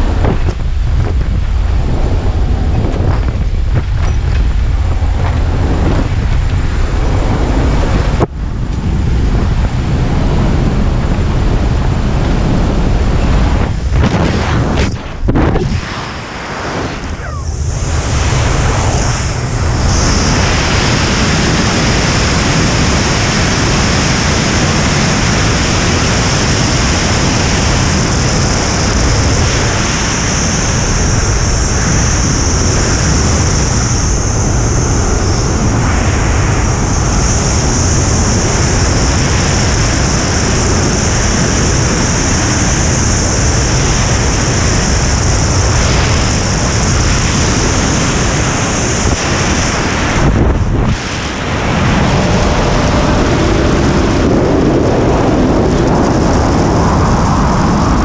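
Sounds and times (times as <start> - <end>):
loud wind roar: 0.0 - 58.0.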